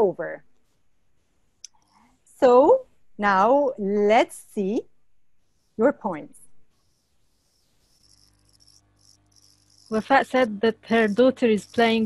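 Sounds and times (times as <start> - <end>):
faint low hum: 1.6 - 12.0.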